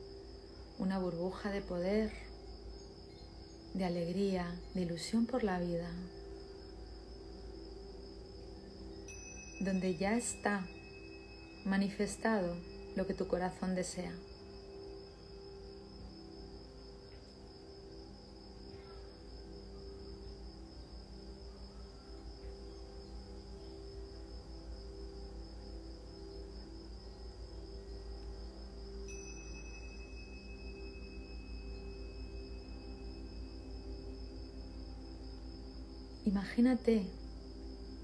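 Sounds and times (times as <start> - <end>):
cricket trill: 0.0 - 38.0
low drone music: 0.0 - 38.0.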